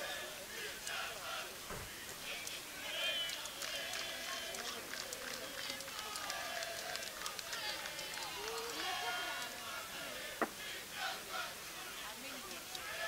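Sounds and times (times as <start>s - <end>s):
faint spectators' voices: 0.0s - 13.0s
players shouting: 0.0s - 13.0s.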